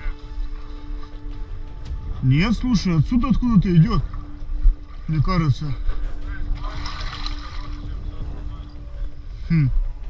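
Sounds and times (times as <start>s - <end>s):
floodwater sloshing and splashing: 0.0s - 2.2s, 2.9s - 9.2s.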